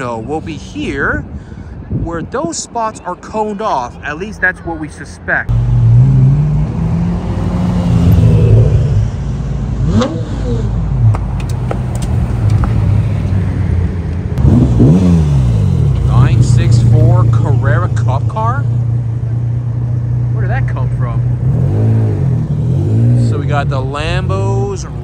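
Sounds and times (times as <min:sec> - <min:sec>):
sports car engines revving: 0:04.2 - 0:25.0.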